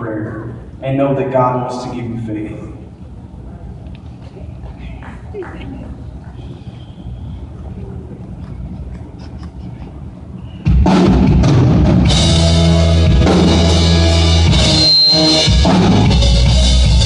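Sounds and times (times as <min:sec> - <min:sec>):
live band with drum kit: 0:10.6 - 0:17.0.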